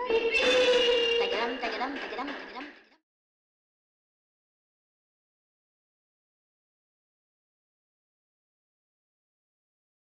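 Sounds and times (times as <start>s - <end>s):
high voice singing: 0.0s - 2.8s.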